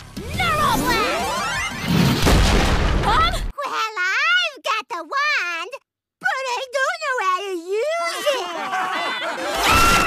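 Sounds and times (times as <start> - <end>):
booming cartoon explosion: 1.8 - 3.5.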